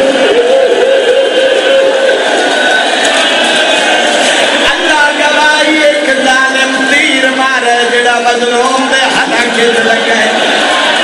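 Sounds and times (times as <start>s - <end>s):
man chanting over loudspeaker: 4.6s - 10.4s.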